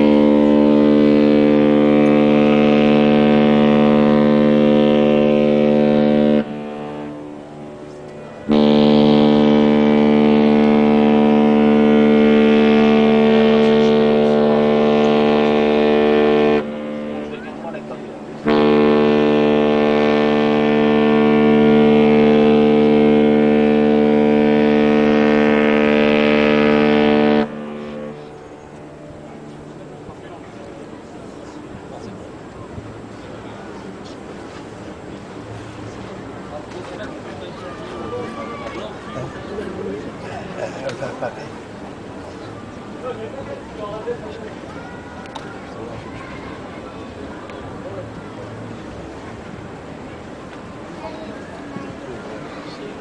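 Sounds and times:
deep ship horn blasts: 0.0s - 31.9s, 32.6s - 40.2s.

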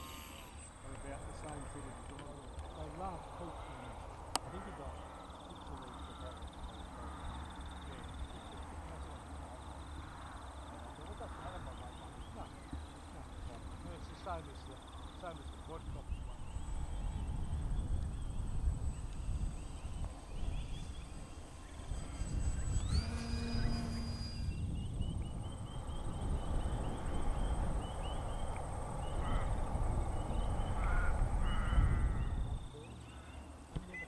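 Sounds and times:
birds chirping: 0.0s - 34.0s
wind buffeting microphone: 15.6s - 32.8s
short rising tone: 20.7s - 24.9s.

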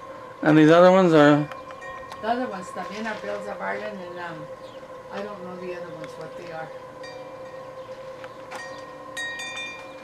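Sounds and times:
high ringing chimes: 0.0s - 10.0s
steady low hum: 0.0s - 10.0s.

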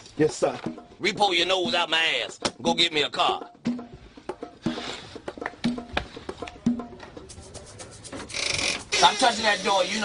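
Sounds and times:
door scraping rub: 7.6s - 10.0s.

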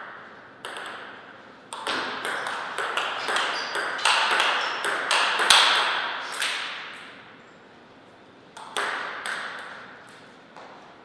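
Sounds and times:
table tennis ball bouncing: 0.0s - 7.1s, 8.6s - 10.7s.

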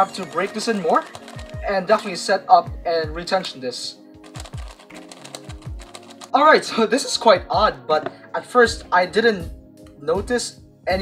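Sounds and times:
puzzle cube clicking: 0.2s - 2.1s, 4.3s - 6.3s.

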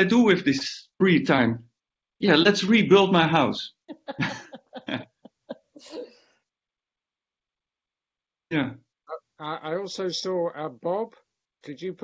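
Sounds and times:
breathy laughter: 3.9s - 6.2s.

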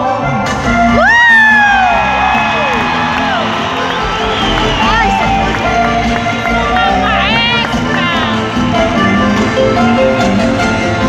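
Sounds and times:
live band music through pa: 0.0s - 11.0s
crowd cheering: 0.9s - 10.3s
high swooping whoop: 1.0s - 4.7s.

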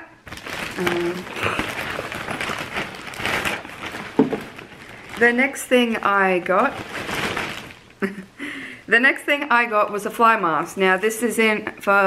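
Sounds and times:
plastic bag rustling: 0.0s - 8.3s.

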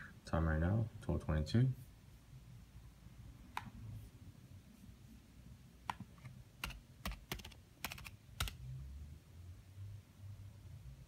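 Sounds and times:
laptop keyboard typing: 5.9s - 8.6s.

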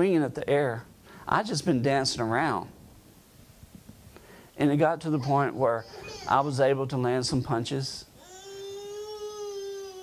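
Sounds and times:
baby crying: 5.0s - 6.8s, 8.2s - 10.0s.

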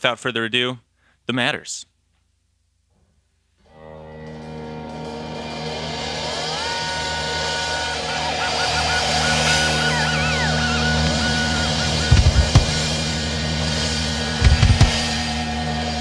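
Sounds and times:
electric guitar notes: 3.6s - 16.0s
kick drum hits: 12.1s - 12.9s, 14.4s - 15.3s.

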